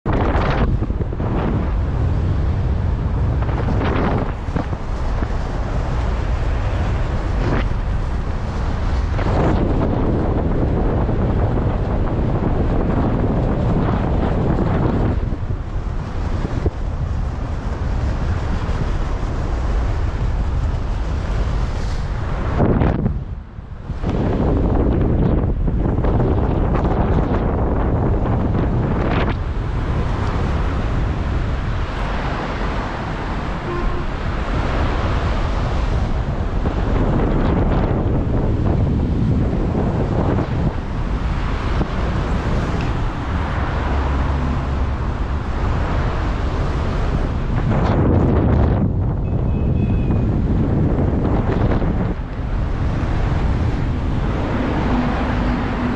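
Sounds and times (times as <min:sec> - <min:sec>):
wind rumbling over microphone: 0:00.0 - 0:55.9.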